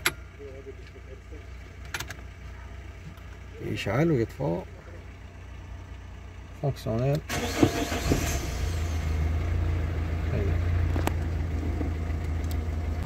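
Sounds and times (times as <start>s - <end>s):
car engine cranking and starting: 0.0s - 13.0s
car engine idling: 0.0s - 13.0s.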